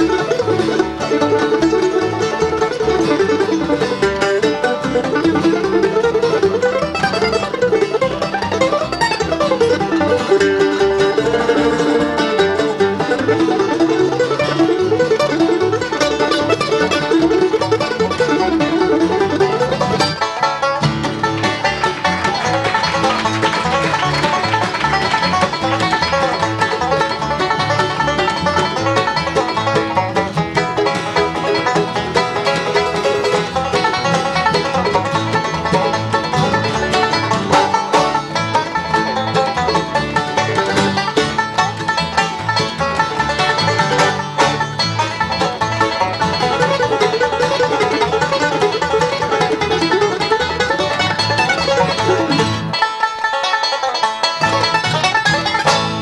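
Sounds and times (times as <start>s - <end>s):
banjo: 0.0s - 56.0s
bluegrass band playing: 0.0s - 56.0s
slapped upright bass: 0.0s - 56.0s.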